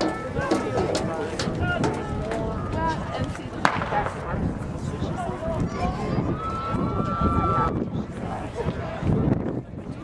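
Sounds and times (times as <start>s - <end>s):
people talking: 0.0s - 10.0s
starter's pistol shot: 3.6s - 4.1s.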